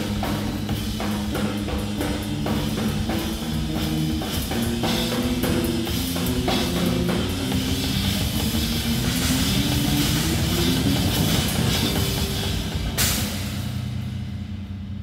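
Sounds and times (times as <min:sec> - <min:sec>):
bass guitar: 0:00.0 - 0:15.0
rock drumming: 0:00.0 - 0:15.0
cymbal crash ringing: 0:06.0 - 0:14.7.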